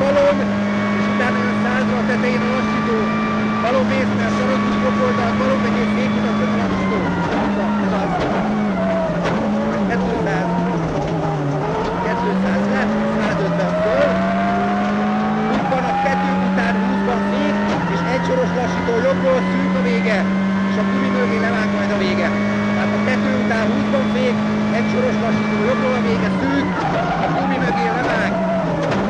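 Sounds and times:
rally car engine at high revs: 0.0 - 29.0.

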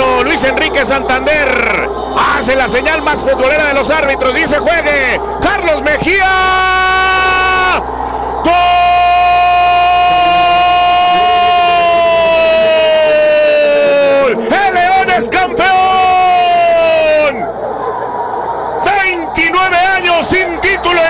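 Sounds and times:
commentator shouting goal call: 0.0 - 7.8, 8.4 - 17.4
crowd noise: 0.0 - 21.0.

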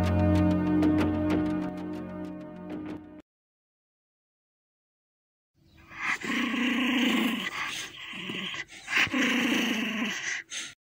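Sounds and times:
dog growling: 6.0 - 10.5.

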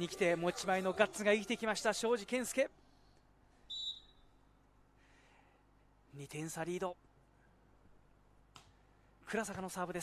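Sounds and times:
referee's whistle blast: 3.7 - 4.2.

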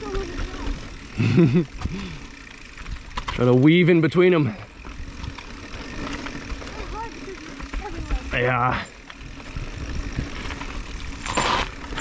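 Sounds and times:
bike tyres rumbling over dirt: 0.0 - 12.0.

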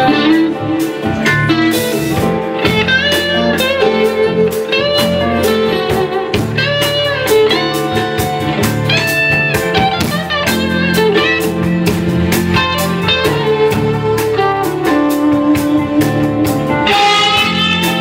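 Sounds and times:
drums keeping a beat: 0.0 - 18.0
electric guitar lines: 0.0 - 18.0.

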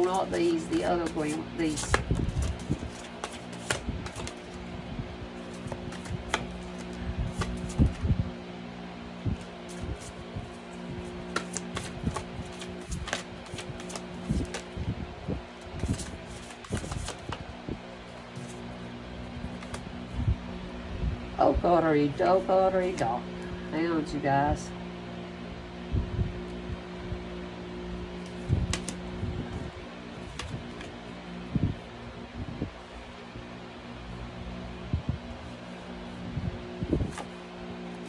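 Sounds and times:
cards shuffled and laid on table: 0.0 - 4.6, 5.4 - 8.0, 11.0 - 14.7, 15.7 - 17.4, 18.3 - 18.6, 19.5 - 19.9, 28.2 - 29.0, 30.2 - 31.0, 37.1 - 37.3.

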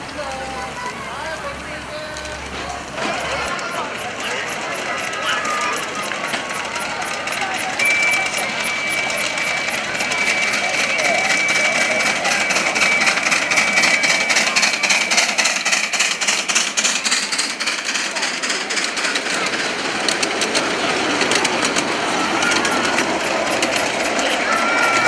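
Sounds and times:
people's voices: 0.0 - 25.0
train wheels clicking on rails: 0.0 - 25.0.

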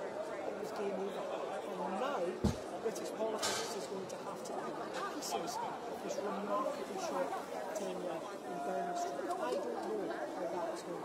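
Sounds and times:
overlapping chatter: 0.0 - 11.0.

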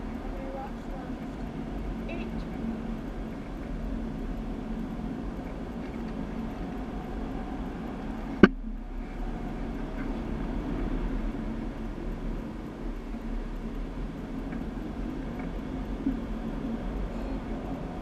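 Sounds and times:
go-kart engines droning: 0.0 - 18.0.

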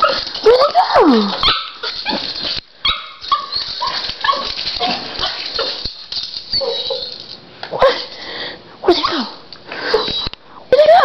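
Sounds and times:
small dog yipping and whining: 2.9 - 4.6, 6.5 - 7.3, 9.9 - 10.3.

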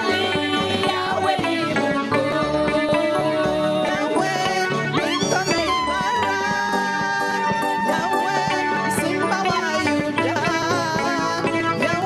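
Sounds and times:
instrumental backing with bass pulse: 0.0 - 12.0
women singing praise music: 0.0 - 12.0.

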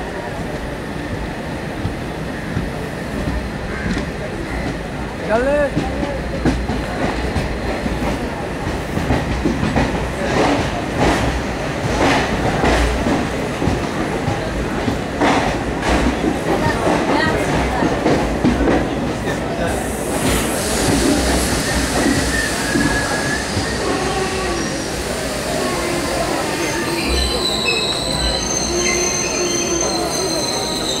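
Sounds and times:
train wheels clacking over rail joints: 2.6 - 24.2
high train wheel squeal: 19.9 - 31.0.

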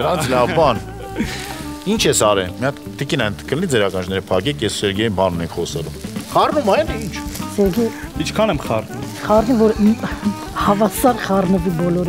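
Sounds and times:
background music: 0.0 - 12.0
food sizzling in frying pan: 0.0 - 12.0.

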